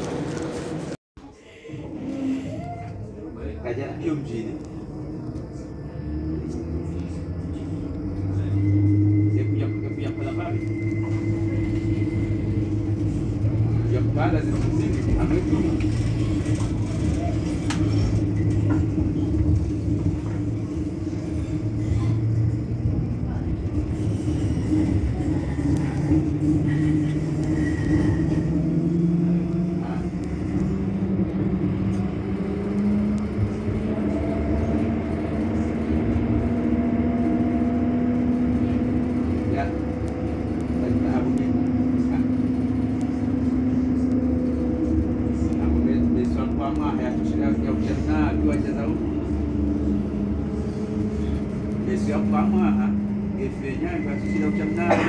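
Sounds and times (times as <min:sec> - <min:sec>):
tram equipment humming: 0:00.0 - 0:55.0.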